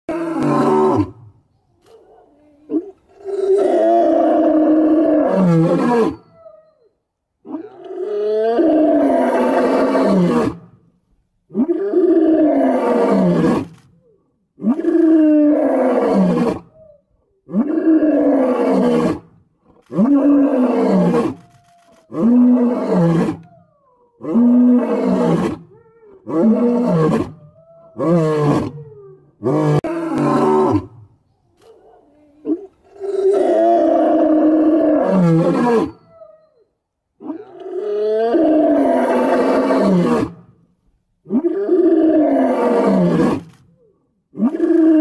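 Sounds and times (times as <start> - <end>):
lion roaring: 19.8 - 31.0.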